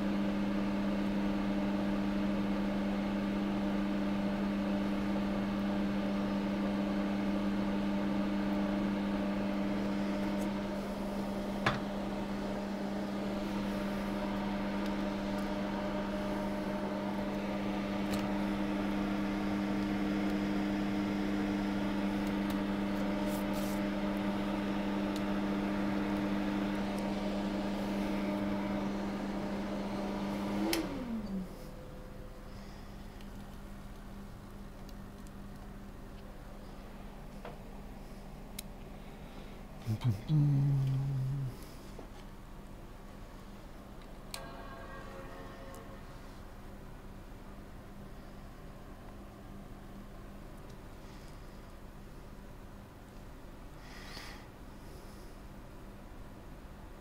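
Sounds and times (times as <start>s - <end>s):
electric motor hum: 2.1s - 35.9s, 36.9s - 42.0s.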